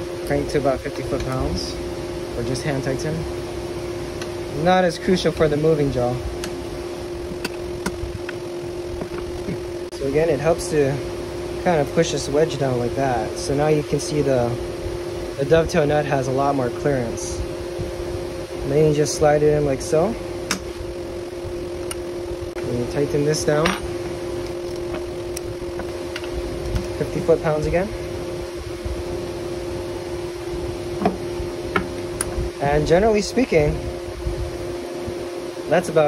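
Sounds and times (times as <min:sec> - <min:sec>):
steady background hum: 0:00.0 - 0:36.0.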